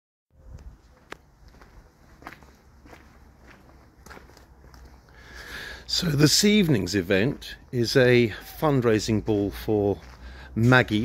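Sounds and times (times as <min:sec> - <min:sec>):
faint footsteps: 0:00.4 - 0:05.6, 0:09.2 - 0:11.0.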